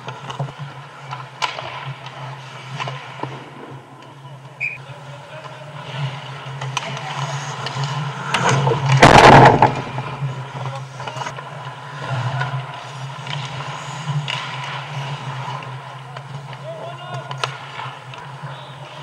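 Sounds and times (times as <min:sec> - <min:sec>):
low arena hum: 0:00.0 - 0:19.0
skate blades scraping ice: 0:00.0 - 0:19.0.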